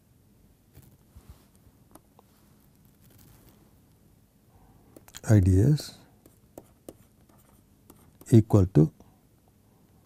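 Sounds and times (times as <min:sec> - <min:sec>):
stylus tapping on tablet: 0:05.0 - 0:05.2, 0:06.2 - 0:08.4
stylus scratching on pen tablet: 0:05.0 - 0:08.6.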